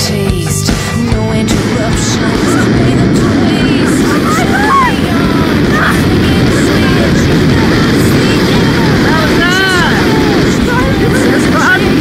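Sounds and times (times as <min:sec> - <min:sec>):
wind buffeting microphone: 0:01.1 - 0:12.0
person whooping: 0:04.0 - 0:06.2.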